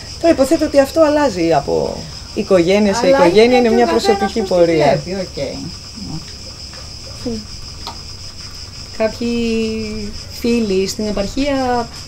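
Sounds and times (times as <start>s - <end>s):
high-pitched insect chorus: 0.0s - 12.0s
woman's voice: 0.2s - 5.6s.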